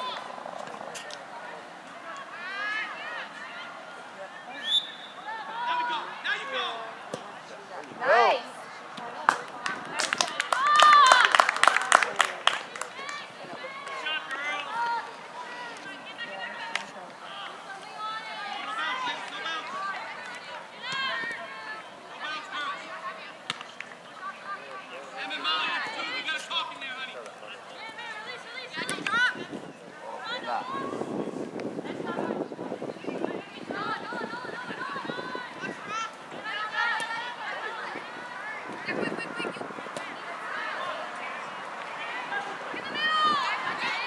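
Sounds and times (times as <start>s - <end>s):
voices calling out: 0.0s - 44.0s
shrill referee's whistle blast: 4.6s - 5.2s.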